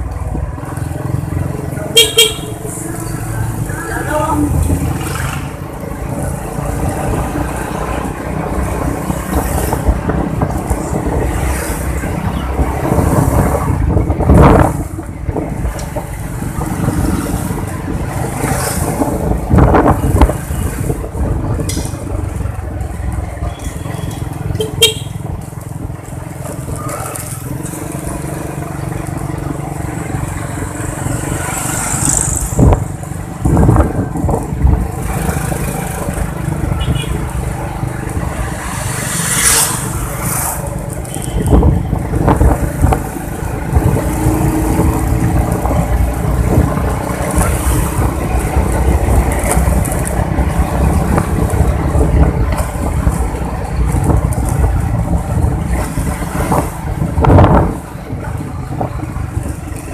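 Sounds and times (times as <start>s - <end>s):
motorcycle engine: 0.0s - 59.9s
wind noise: 3.0s - 59.9s.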